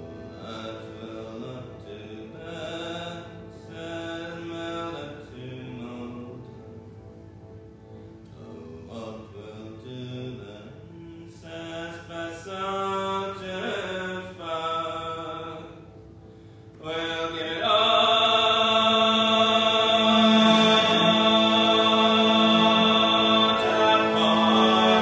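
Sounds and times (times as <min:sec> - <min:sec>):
accordion drone chords: 0:00.0 - 0:05.5, 0:17.0 - 0:25.0
bowed cello: 0:16.8 - 0:25.0.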